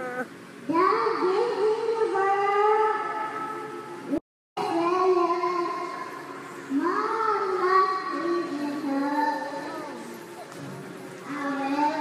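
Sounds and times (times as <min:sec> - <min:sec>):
girl singing into a microphone: 0:04.6 - 0:10.1, 0:11.2 - 0:12.0.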